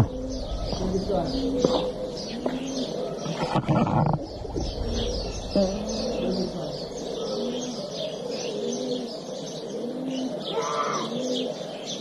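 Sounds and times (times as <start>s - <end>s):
dove cooing: 0.0s - 12.0s
small birds chirping: 0.0s - 12.0s.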